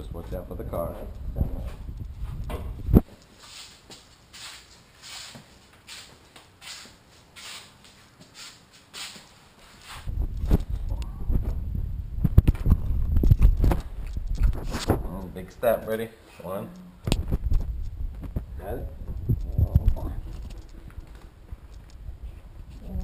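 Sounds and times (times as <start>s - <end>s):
microphone handling noise: 0.8s - 3.2s, 10.0s - 15.4s, 17.0s - 23.0s.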